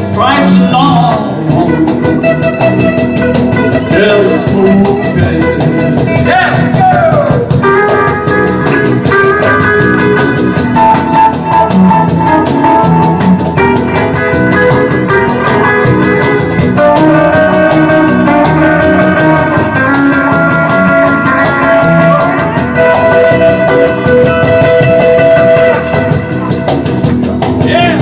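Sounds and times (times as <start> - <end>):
drum beat: 0.0 - 28.0
electric guitar lead: 0.0 - 28.0.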